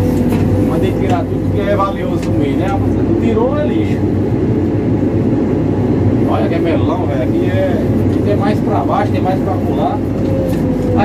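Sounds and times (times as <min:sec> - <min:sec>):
diesel engine running: 0:00.0 - 0:11.0.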